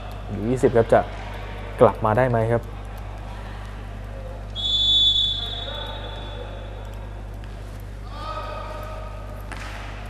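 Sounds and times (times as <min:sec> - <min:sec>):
referee's whistle blast: 0:04.6 - 0:06.4.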